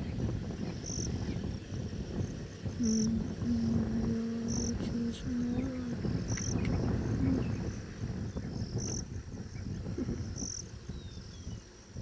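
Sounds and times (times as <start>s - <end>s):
low uneven rumble: 0.0s - 12.0s
insect trilling: 2.8s - 7.8s.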